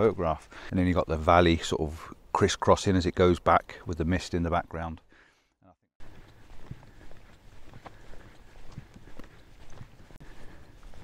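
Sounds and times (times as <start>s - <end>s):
footsteps walking outdoors: 0.0s - 2.3s, 6.0s - 11.0s.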